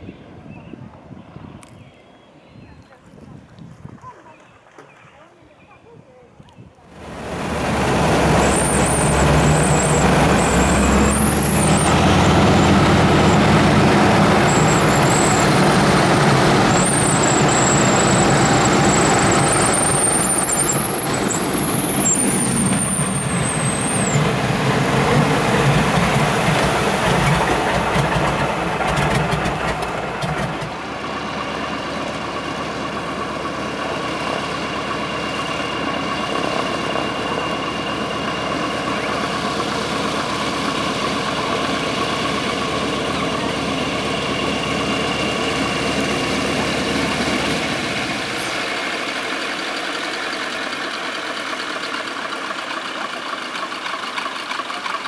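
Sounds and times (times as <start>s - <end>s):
aircraft engine and propeller: 6.9s - 55.0s.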